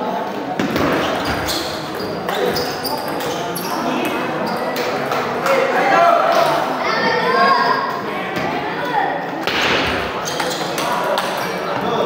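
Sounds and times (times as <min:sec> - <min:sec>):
murmur of voices in a hall: 0:00.0 - 0:12.0.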